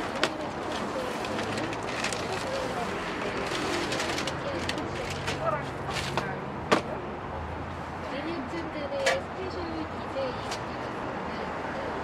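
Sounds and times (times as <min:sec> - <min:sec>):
foil bag crinkling: 0:00.6 - 0:05.3.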